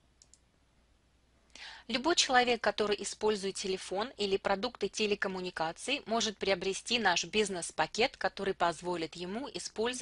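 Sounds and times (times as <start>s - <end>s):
faint clicks: 0.2s - 0.5s
woman inhaling: 1.5s - 1.9s
woman speaking: 1.8s - 10.0s.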